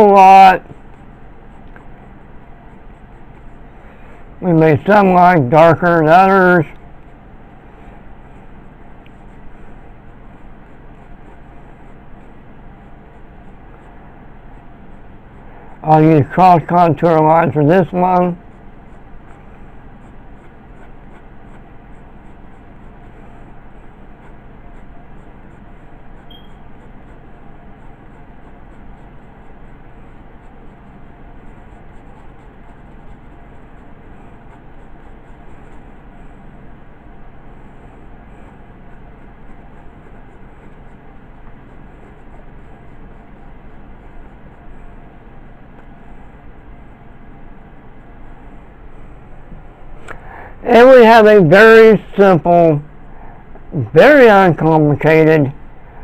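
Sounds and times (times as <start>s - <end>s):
pencil scratching on paper: 0.0s - 49.7s.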